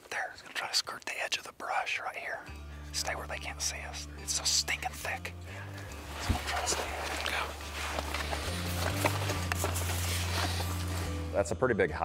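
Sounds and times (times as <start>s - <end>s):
person whispering: 0.0s - 5.4s, 6.1s - 8.4s.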